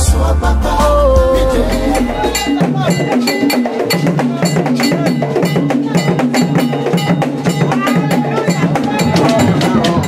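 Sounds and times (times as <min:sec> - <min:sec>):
drum percussion music: 0:00.0 - 0:10.0.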